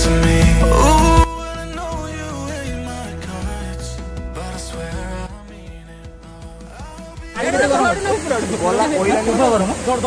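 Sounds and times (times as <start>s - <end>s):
background music: 0.0s - 10.0s
people talking: 7.4s - 10.0s.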